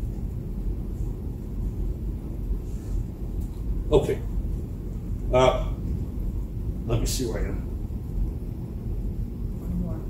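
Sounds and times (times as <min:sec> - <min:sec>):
low room rumble: 0:00.0 - 0:10.0.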